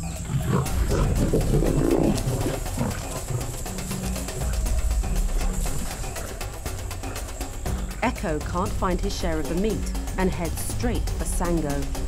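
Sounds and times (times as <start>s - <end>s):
background music with drone: 0.0s - 12.0s.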